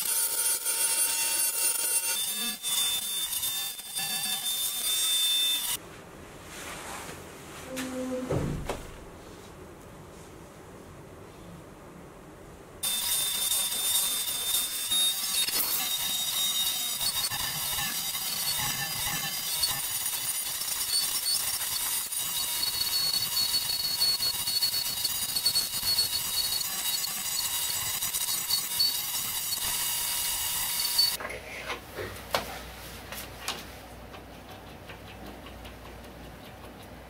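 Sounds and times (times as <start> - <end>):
wood lathe cutting: 12.8 - 31.2.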